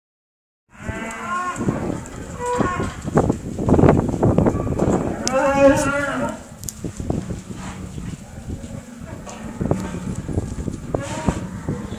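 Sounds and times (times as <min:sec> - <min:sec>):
cows mooing: 0:00.7 - 0:03.2, 0:04.4 - 0:06.6, 0:07.8 - 0:11.9.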